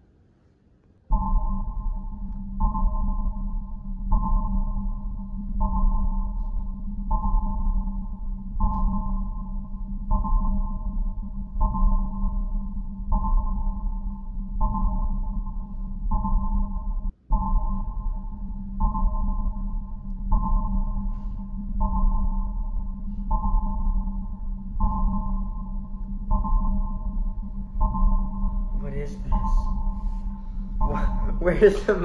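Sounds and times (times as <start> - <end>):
low drone: 1.1 - 32.0
pulsing chord: 1.1 - 32.0.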